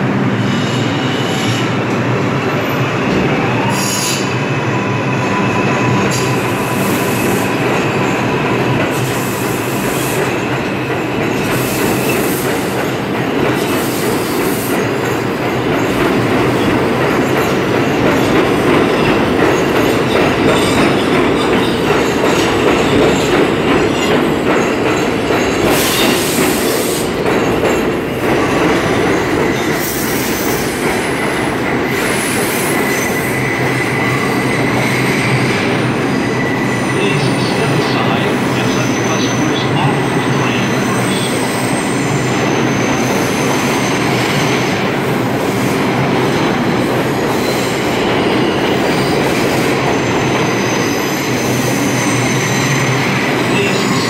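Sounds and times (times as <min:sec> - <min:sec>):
subway train rumble and wheel noise: 0:00.0 - 0:54.0.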